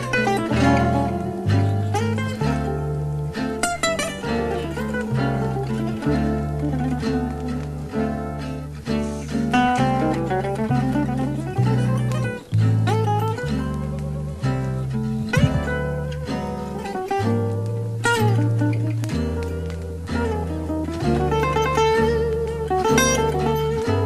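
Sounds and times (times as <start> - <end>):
acoustic lead guitar runs: 0.0 - 24.0
double bass walking: 0.0 - 24.0
rhythm guitar: 0.0 - 24.0.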